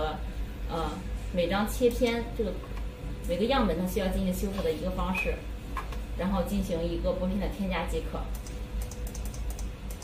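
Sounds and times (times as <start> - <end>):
faint steady hum: 0.0 - 10.0
keyboard and mouse clicks: 8.3 - 10.0.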